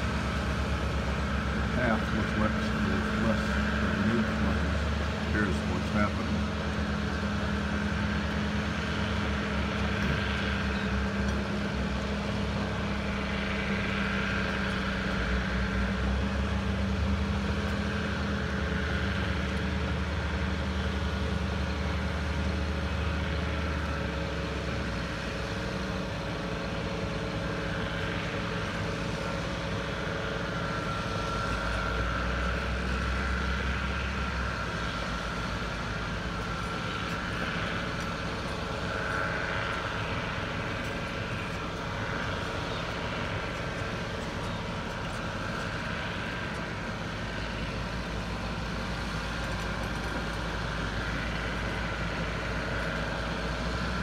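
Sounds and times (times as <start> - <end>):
heavy diesel engines droning: 0.0 - 54.0.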